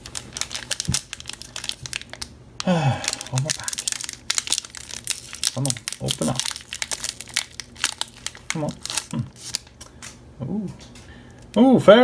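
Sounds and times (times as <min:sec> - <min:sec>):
foil wrapper crinkling: 0:00.0 - 0:10.2.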